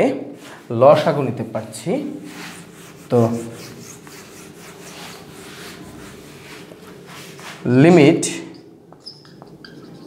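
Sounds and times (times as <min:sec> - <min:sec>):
eraser wiping whiteboard: 0:02.1 - 0:07.8.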